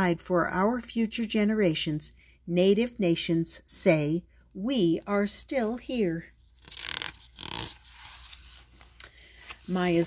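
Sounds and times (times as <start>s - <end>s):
book page turning: 6.4s - 10.0s.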